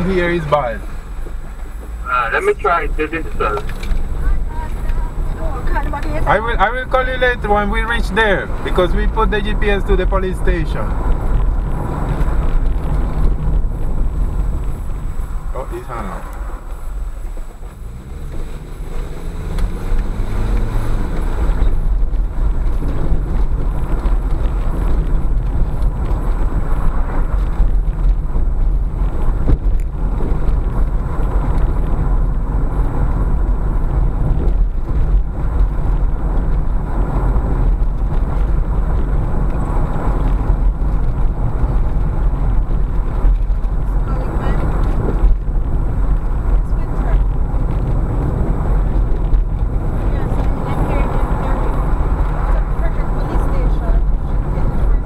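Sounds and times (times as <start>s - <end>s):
car engine and tyre rumble: 0.0s - 55.0s.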